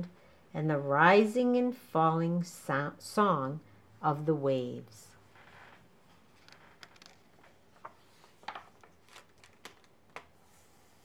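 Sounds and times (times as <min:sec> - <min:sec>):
book page turning: 0:06.3 - 0:11.0.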